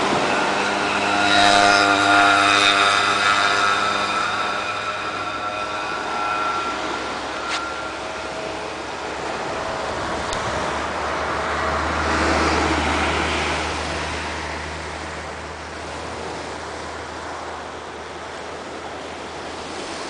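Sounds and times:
engine note: 0.0 - 20.0
vehicle passing: 0.0 - 20.0.

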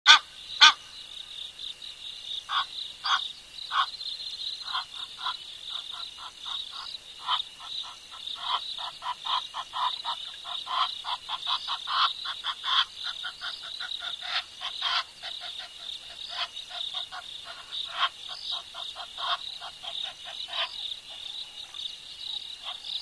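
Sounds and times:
frogs croaking: 0.1 - 23.0
loud sharp frog calls: 0.1 - 23.0.

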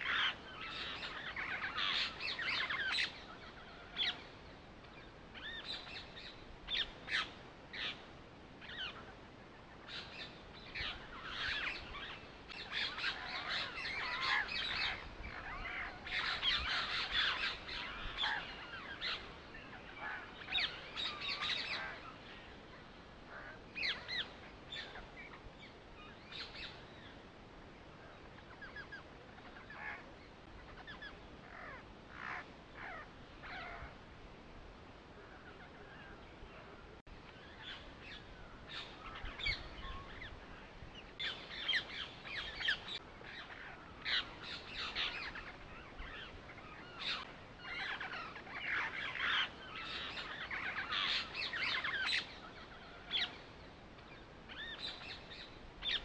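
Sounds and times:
birds chirping and calling: 0.0 - 27.3, 28.0 - 34.0, 35.2 - 56.0.

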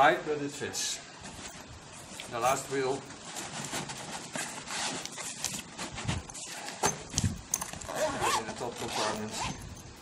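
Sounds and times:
nylon bag rustling: 1.2 - 10.0.

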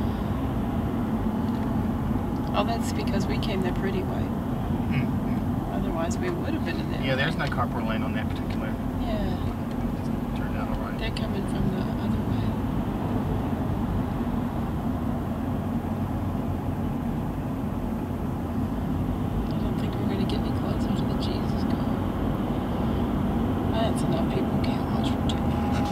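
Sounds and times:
car road and engine noise: 0.0 - 25.9.

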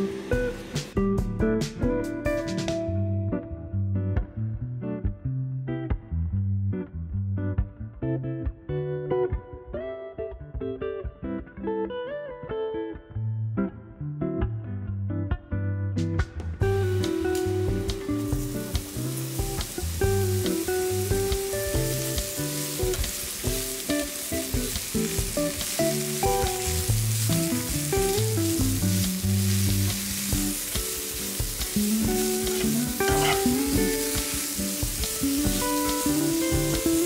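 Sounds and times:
guitar music: 0.0 - 37.0
mushrooms sizzling in a frying pan: 16.6 - 37.0.

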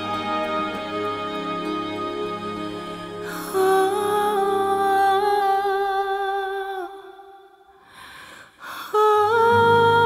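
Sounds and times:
backing music: 0.0 - 3.7.

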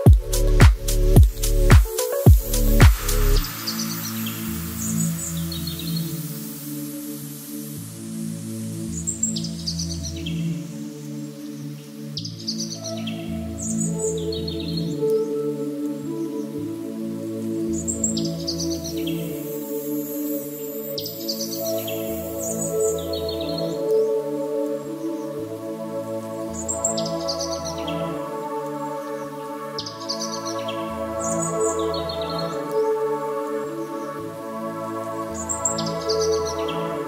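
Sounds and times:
calm instrumental music: 0.0 - 37.0.

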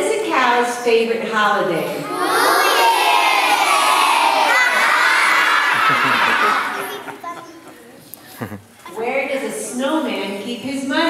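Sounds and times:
children shouting and cheering: 2.0 - 7.7.

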